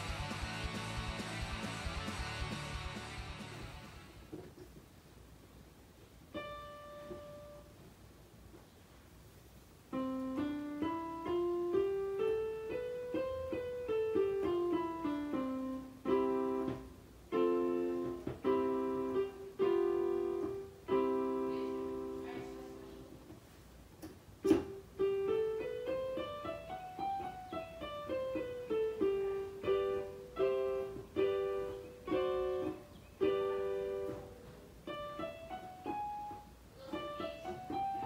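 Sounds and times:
electronic keyboard piano: 6.2 - 8.0, 9.8 - 38.0.

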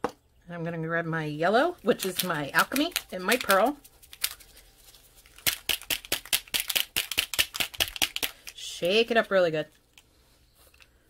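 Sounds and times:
ink bottle ball rattling: 1.9 - 4.6.

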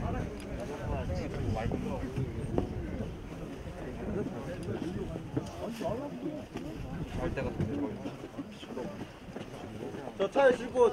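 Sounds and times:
wind rumbling on microphone: 0.0 - 10.1
men talking at a distance: 0.0 - 10.9.

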